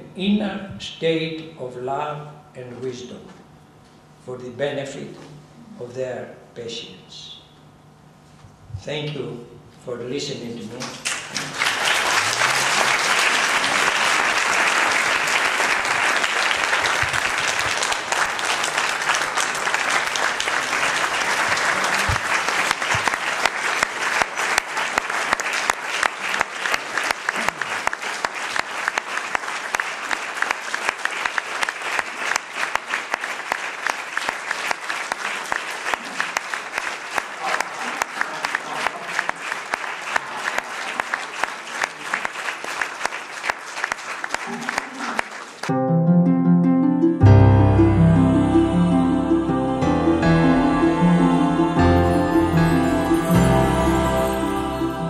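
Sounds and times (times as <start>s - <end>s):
audience applause: 11.0s - 45.7s, 50.0s - 55.0s.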